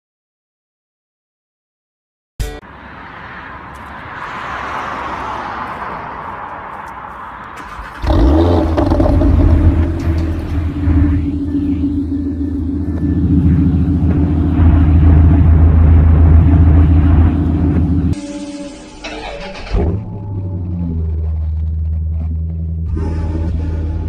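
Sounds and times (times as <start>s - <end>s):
car engine idling: 6.2s - 18.2s.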